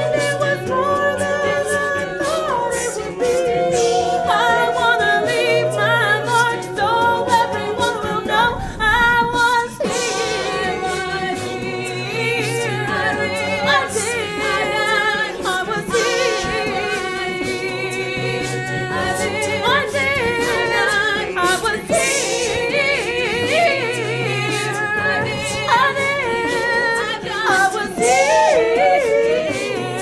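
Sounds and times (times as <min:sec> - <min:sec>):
a cappella group singing: 0:00.0 - 0:30.0
low bass vocal notes: 0:03.2 - 0:15.2.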